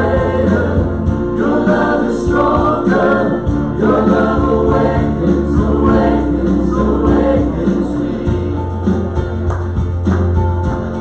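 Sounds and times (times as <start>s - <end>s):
voices singing together: 0.0s - 9.5s
acoustic guitar: 0.0s - 11.0s
keyboard: 0.0s - 11.0s.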